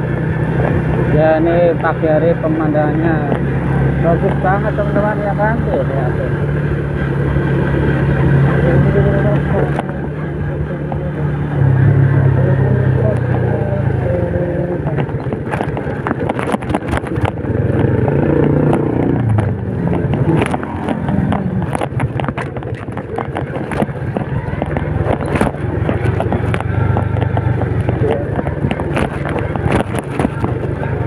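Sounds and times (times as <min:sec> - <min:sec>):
motorcycle rattling on rough road: 0:00.0 - 0:31.0
small motorcycle engine running: 0:00.0 - 0:31.0.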